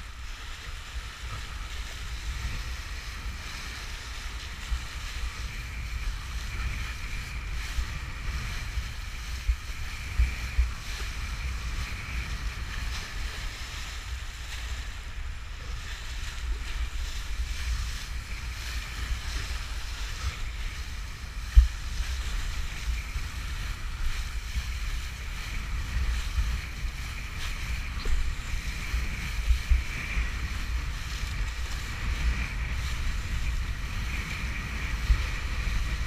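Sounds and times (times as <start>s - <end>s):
wind rumbling on microphone: 0.0s - 36.0s.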